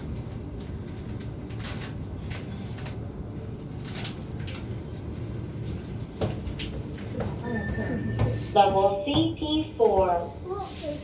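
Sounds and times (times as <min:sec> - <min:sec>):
steady low hum: 0:00.0 - 0:11.0
elevator doors sliding shut: 0:07.4 - 0:09.6.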